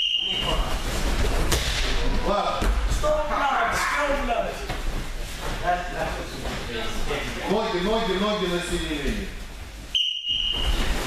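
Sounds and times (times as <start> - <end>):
whistle blast: 0.0 - 0.6, 9.9 - 10.8.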